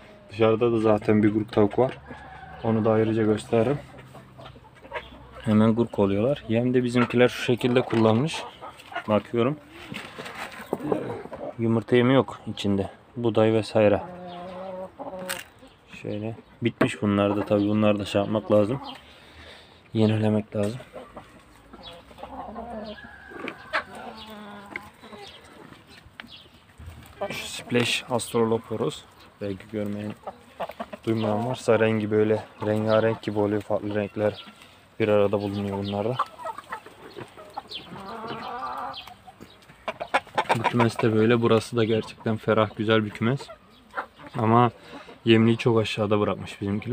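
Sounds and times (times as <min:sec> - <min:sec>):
chicken calling: 0:00.0 - 0:13.0, 0:13.6 - 0:46.9.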